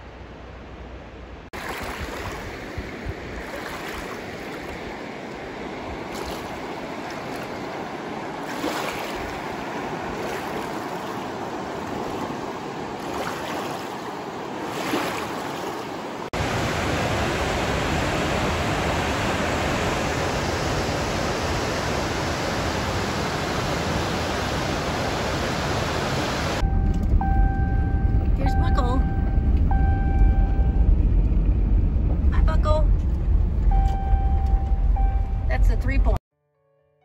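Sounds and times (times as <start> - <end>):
water rushing over rocks: 1.6 - 26.6
vehicle driving rumble from cab: 26.6 - 36.2.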